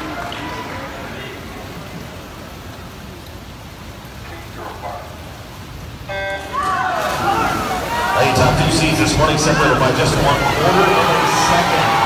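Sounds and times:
crowd shouting and cheering: 6.1s - 12.0s
crowd murmur: 6.5s - 12.0s.

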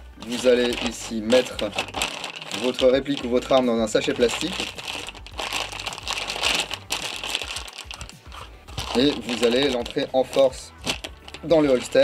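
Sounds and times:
plastic bag crinkling: 0.2s - 12.0s.

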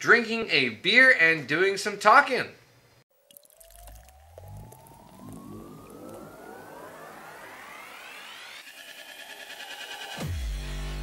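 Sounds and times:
beer pouring into glass: 3.1s - 7.3s
electronic music: 3.8s - 11.0s.

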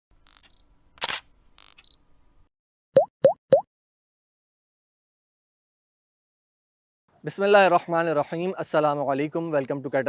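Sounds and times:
short clicks and swishes: 0.2s - 2.0s
rising bloop plops: 3.0s - 3.7s.

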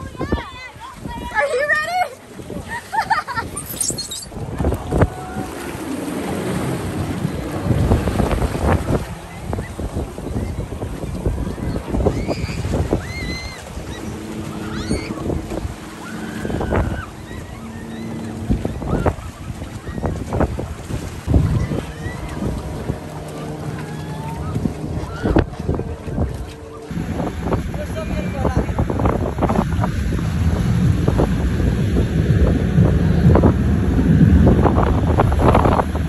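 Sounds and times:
water slapping boat hull: 0.0s - 3.7s, 4.3s - 36.0s
wind buffeting microphone: 0.0s - 36.0s
outboard motor humming: 4.3s - 36.0s.

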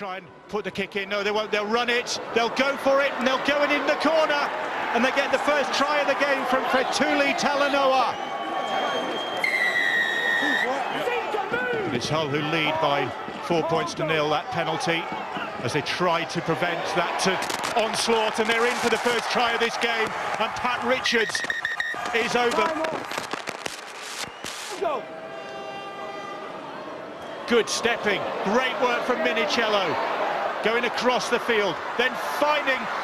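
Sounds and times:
crowd noise: 0.0s - 33.0s
high whistle blast: 8.4s - 10.8s.

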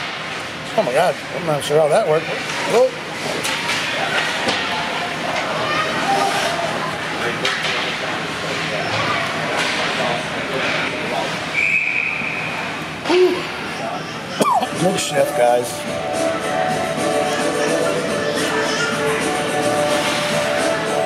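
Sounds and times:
crowd voices and shouts: 1.6s - 21.0s
referee's whistle: 11.5s - 12.5s.

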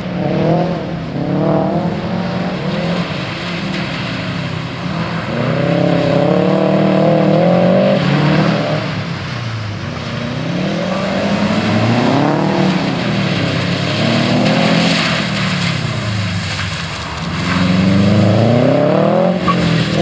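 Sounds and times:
car engine revving: 0.0s - 20.0s.

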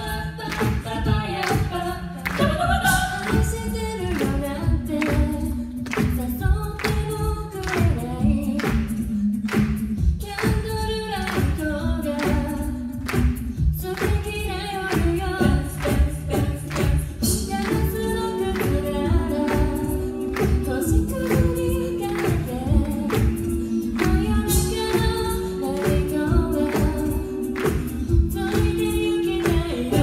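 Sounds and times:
steady beat: 0.0s - 30.0s
women singing in close harmony: 0.0s - 30.0s.

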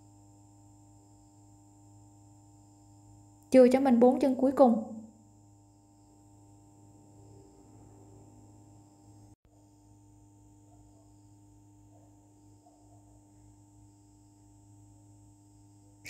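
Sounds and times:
faint room-tone hum: 0.0s - 16.0s.

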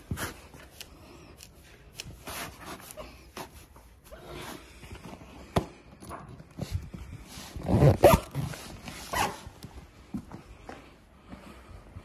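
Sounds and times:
zipper rasp: 7.4s - 9.5s.

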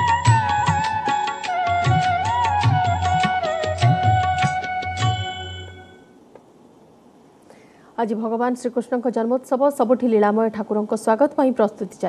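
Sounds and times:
devotional music held notes: 0.0s - 6.2s
faint hiss: 3.1s - 12.0s.

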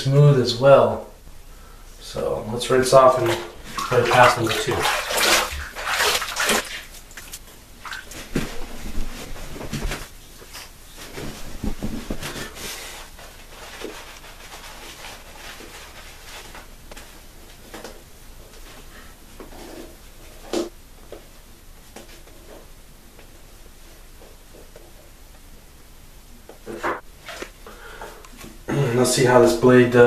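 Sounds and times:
rubbing lather on face: 3.1s - 9.8s, 11.4s - 16.7s
water splashing on face: 3.2s - 9.0s.

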